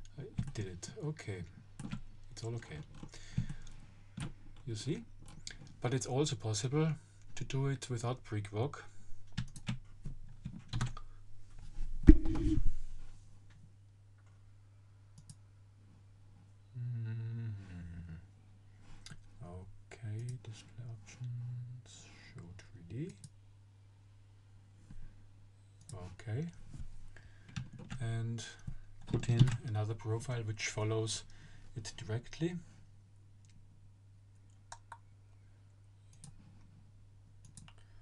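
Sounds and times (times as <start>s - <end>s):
steady low hum: 10.4s - 38.0s
computer mouse clicks: 15.2s - 15.4s
man's wordless vocal sounds: 16.8s - 18.3s, 20.1s - 23.1s.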